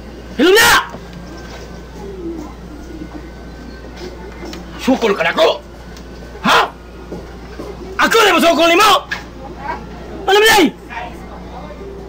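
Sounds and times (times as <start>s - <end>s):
low background hum: 0.0s - 12.0s
bird cooing: 1.2s - 4.7s.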